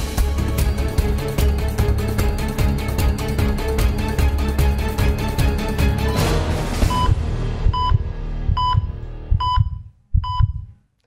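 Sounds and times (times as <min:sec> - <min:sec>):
low heartbeat-like thump: 0:06.7 - 0:10.7
electronic beeps: 0:06.9 - 0:10.6.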